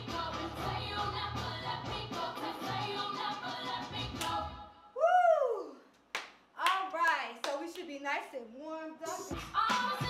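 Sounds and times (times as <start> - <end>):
hand clap: 4.2 - 4.4, 6.1 - 7.9.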